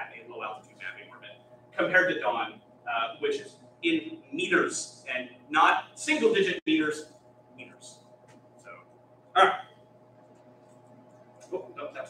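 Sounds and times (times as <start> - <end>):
man speaking: 0.0 - 8.0, 8.6 - 9.7, 11.4 - 12.0
low room hum: 0.0 - 12.0.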